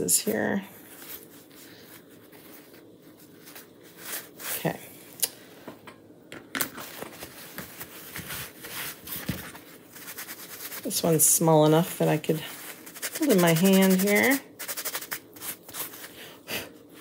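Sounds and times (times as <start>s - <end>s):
paper towel rubbing on wood: 9.9s - 16.1s.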